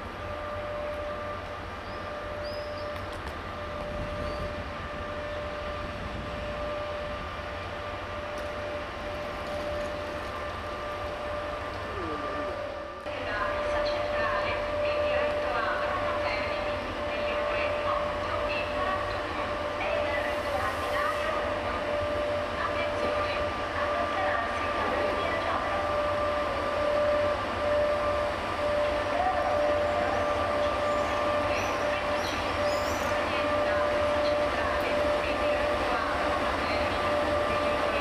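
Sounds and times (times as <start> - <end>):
electric locomotive whine: 0.0 - 38.0
train rumble: 0.0 - 38.0.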